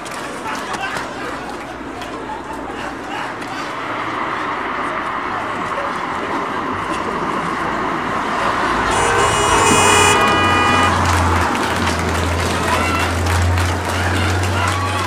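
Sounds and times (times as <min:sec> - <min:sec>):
vehicle horn: 0:08.8 - 0:11.9.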